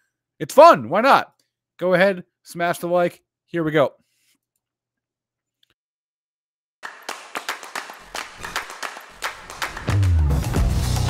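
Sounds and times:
rhythmic hand claps: 6.8 - 11.0
bass line: 9.9 - 11.0.

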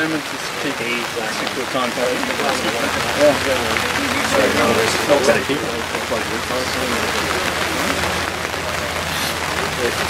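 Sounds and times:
distant voices: 0.0 - 10.0
open-air hiss: 0.0 - 10.0.

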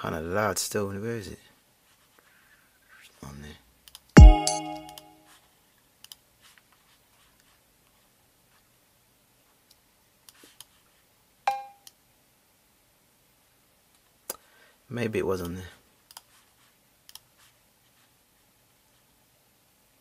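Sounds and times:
deep drum machine thump: 4.2 - 4.5
cowbell hit: 4.2 - 4.9.

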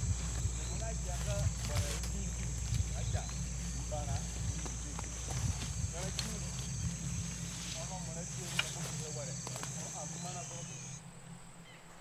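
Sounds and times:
short chirping calls: 0.0 - 11.0
high insect buzz: 0.0 - 12.0
low steady hum: 0.0 - 12.0.

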